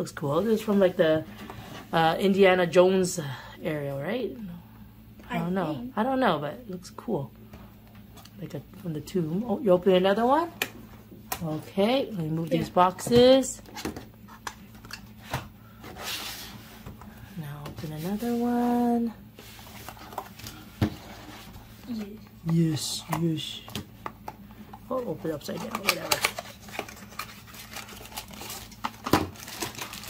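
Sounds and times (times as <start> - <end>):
cardboard rustling: 24.9 - 30.0.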